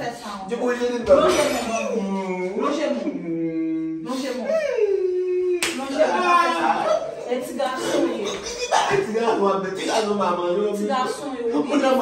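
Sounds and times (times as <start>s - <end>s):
sharp slap: 5.6s - 5.9s.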